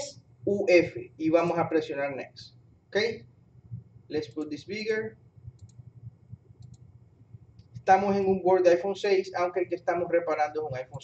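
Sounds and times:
computer mouse clicks: 4.3 - 4.6, 5.4 - 7.9.

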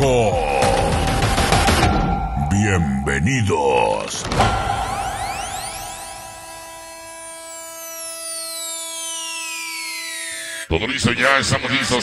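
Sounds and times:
held synthesizer chord: 4.4 - 10.7
high tone sweeping downward: 4.4 - 10.7.

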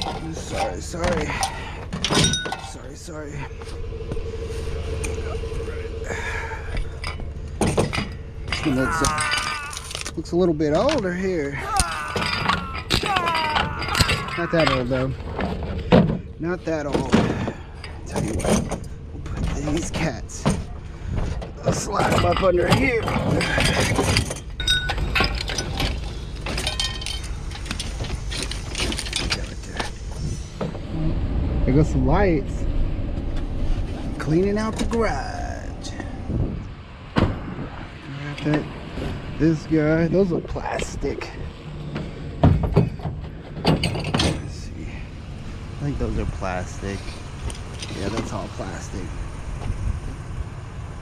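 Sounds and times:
metal parts clinking and clattering: 0.0 - 2.9, 6.7 - 16.2, 16.8 - 20.7, 21.4 - 30.6, 43.6 - 44.6, 47.4 - 48.3
truck engine idling: 0.0 - 51.0.

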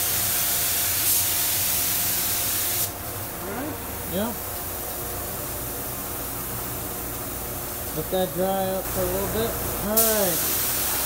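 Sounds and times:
fan-like hum with hiss: 0.0 - 11.0
person speaking a word: 8.0 - 10.5.

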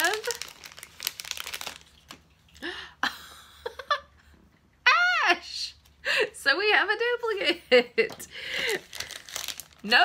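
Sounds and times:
packaging crinkling: 0.0 - 2.6, 8.4 - 10.0.

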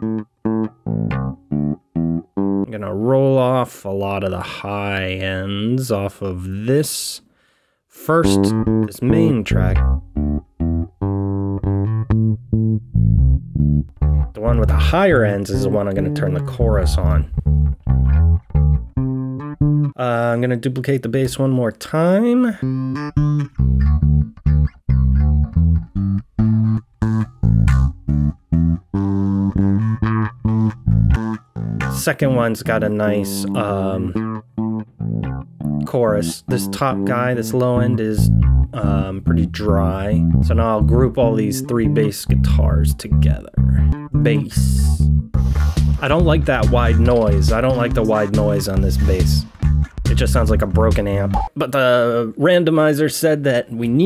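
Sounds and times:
electric bass guitar notes: 0.0 - 6.5, 8.1 - 20.4, 22.4 - 51.6.

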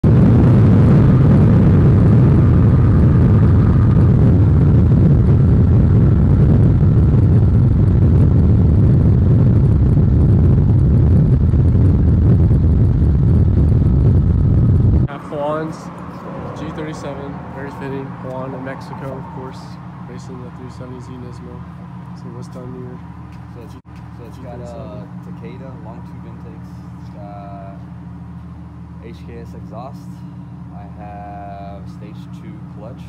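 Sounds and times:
car wind and road noise: 0.0 - 33.0.

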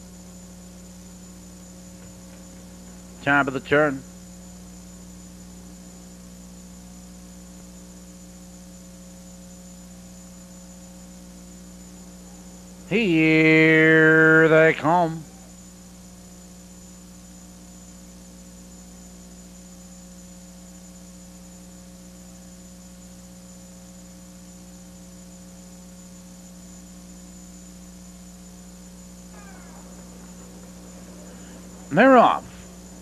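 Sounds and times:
electrical hum: 0.0 - 33.0
thin high whine: 27.1 - 33.0.

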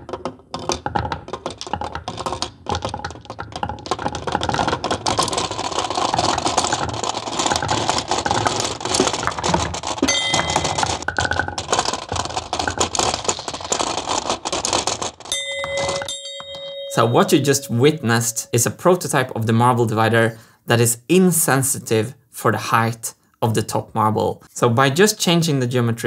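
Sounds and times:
marbles clattering into plastic: 0.0 - 16.1
sustained ringing tone: 10.1 - 10.9, 15.3 - 18.7.

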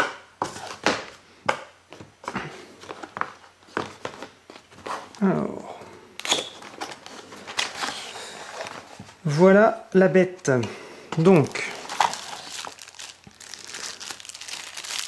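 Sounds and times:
cardboard box being opened: 11.7 - 14.5.

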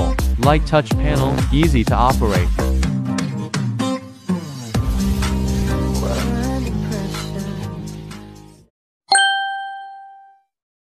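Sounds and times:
bright bell ding: 9.1 - 10.5.

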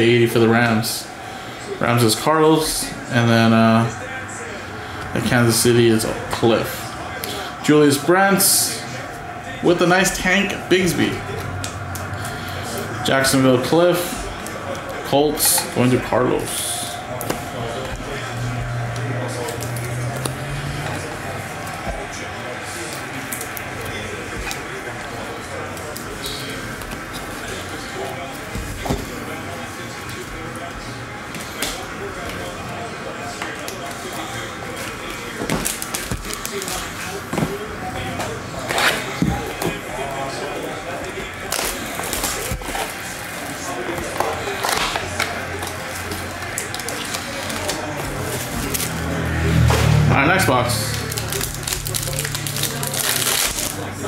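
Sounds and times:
indistinct voices: 0.0 - 54.0
plastic sleeves crinkling and clicking: 51.1 - 53.9.

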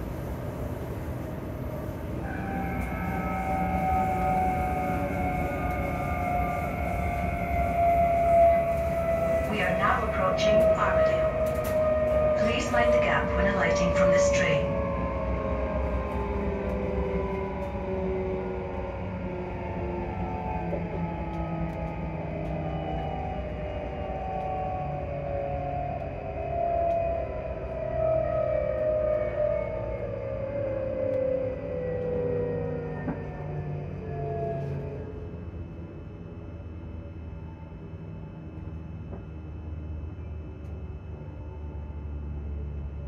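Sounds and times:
electric train motors whining: 0.0 - 43.0
low train running rumble: 0.0 - 43.0.

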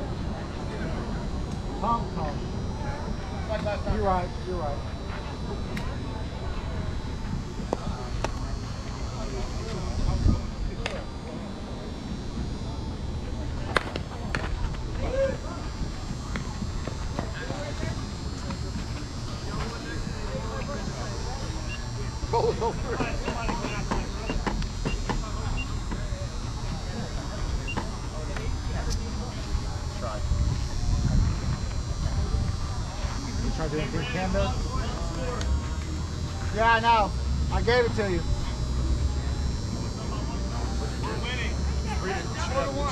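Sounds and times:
faint distant voices: 0.0 - 42.9.

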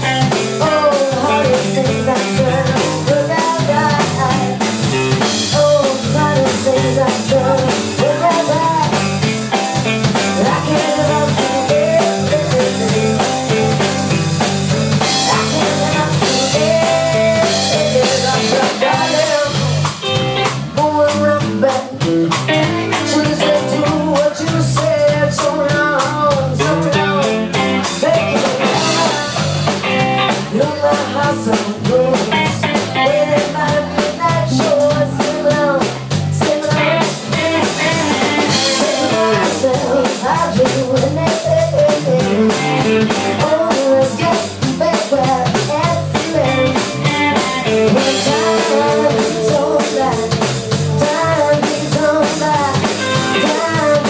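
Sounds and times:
drum kit beat: 0.0 - 54.0
electric bass: 0.0 - 54.0
electric guitar: 0.0 - 54.0.

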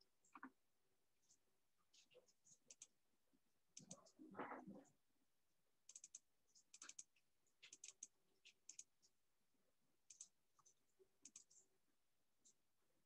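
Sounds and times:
keyboard and mouse clicks: 3.8 - 4.6, 5.9 - 8.9, 10.1 - 10.4, 11.2 - 11.6.

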